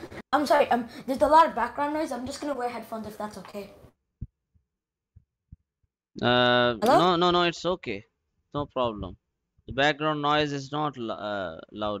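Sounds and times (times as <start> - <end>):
faint low thumps: 8.6 - 9.9.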